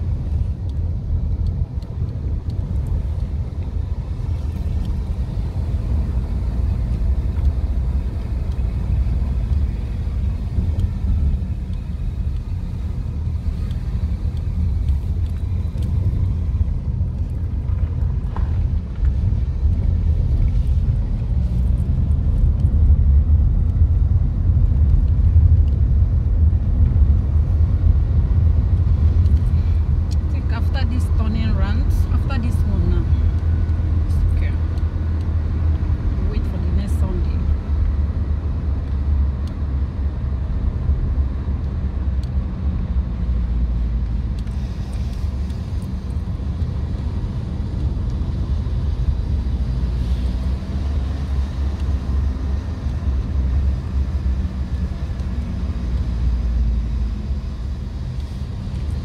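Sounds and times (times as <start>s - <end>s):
car interior engine and road rumble: 0.0s - 59.0s.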